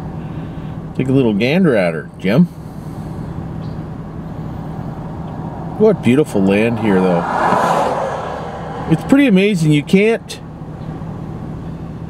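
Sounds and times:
truck engine humming: 0:02.4 - 0:12.0.

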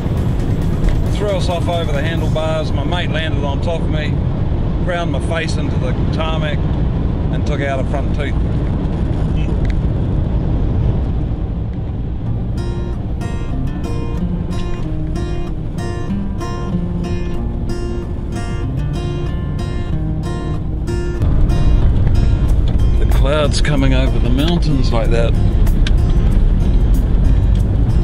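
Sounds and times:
music with quickly picked notes: 0:00.0 - 0:02.9, 0:12.3 - 0:28.0
engine and road rumble: 0:00.0 - 0:28.0.

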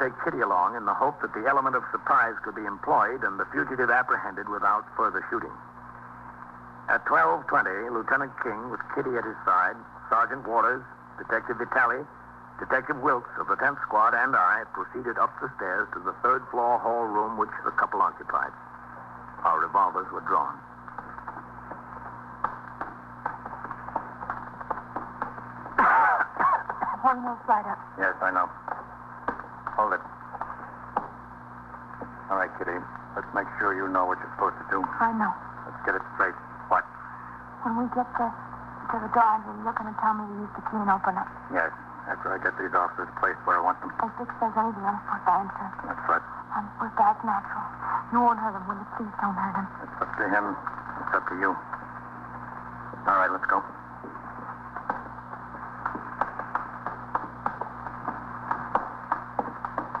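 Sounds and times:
low hum and hiss: 0:00.0 - 1:00.0
footsteps walking slowly: 0:20.2 - 0:27.0, 0:28.1 - 0:33.4, 0:35.5 - 0:36.0, 0:49.8 - 1:00.0.

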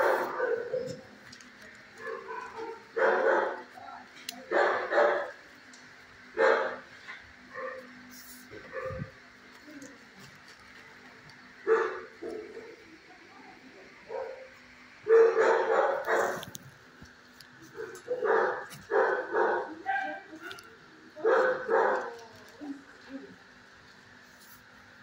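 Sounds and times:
dogs barking: 0:00.0 - 0:01.0, 0:01.9 - 0:03.8, 0:04.4 - 0:05.4, 0:06.3 - 0:09.2, 0:11.6 - 0:12.9, 0:14.0 - 0:16.5, 0:17.7 - 0:20.4, 0:21.2 - 0:22.3
faint background hum: 0:00.0 - 0:25.0.

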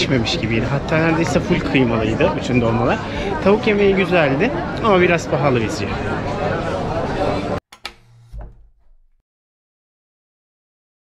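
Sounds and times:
people talking in street: 0:00.0 - 0:07.6
sharp click: 0:07.7 - 0:09.0.

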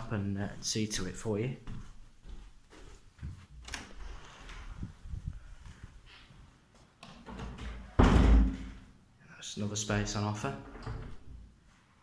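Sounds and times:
footsteps thumping: 0:01.6 - 0:03.6.

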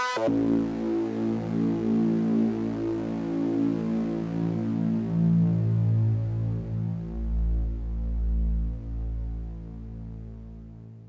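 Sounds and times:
droning synthesizer bass: 0:00.0 - 0:11.0.

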